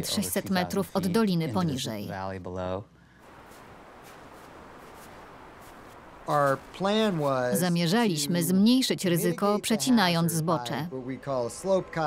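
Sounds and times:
snow chunks crunching: 0:03.2 - 0:07.6
snowboard scraping on snow: 0:03.4 - 0:07.5.

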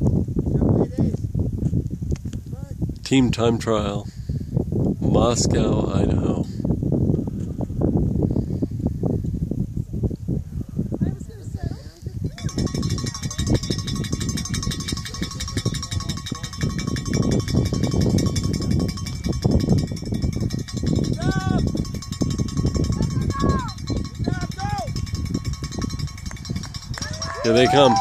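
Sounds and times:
wind buffeting microphone: 0:00.0 - 0:28.0.

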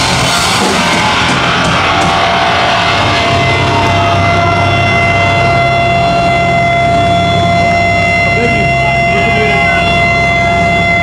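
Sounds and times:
guitar amp feedback tones: 0:00.0 - 0:11.0
heavy music: 0:00.0 - 0:11.0
low hum: 0:00.0 - 0:11.0.

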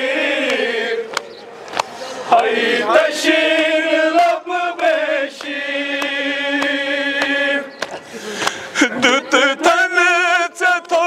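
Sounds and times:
men singing along: 0:00.0 - 0:01.2, 0:02.3 - 0:07.8, 0:08.8 - 0:11.0.

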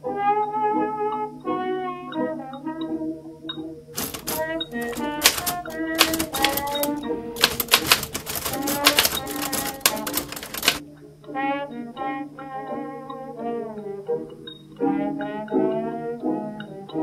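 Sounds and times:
background music: 0:00.0 - 0:17.0
rapid manual typewriter typing: 0:04.0 - 0:10.8.

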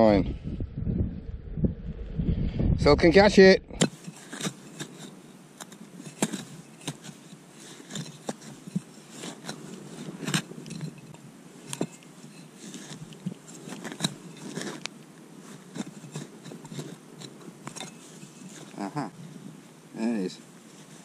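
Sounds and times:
hand digger scraping soil: 0:03.8 - 0:18.8.

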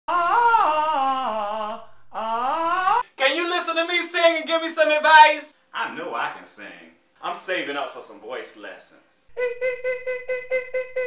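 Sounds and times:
man singing a held vowel: 0:03.2 - 0:05.5.

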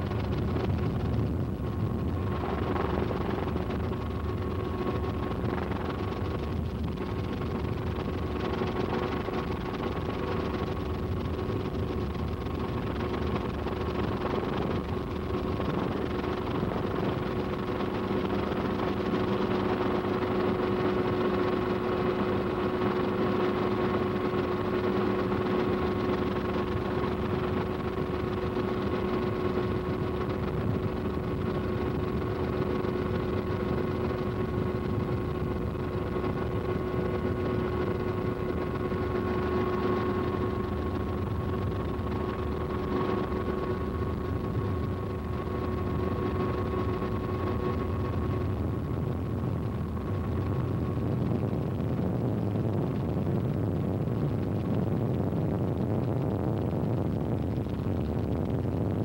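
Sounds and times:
helicopter engine drone: 0:00.0 - 0:54.8
constant whine: 0:00.0 - 0:59.0.

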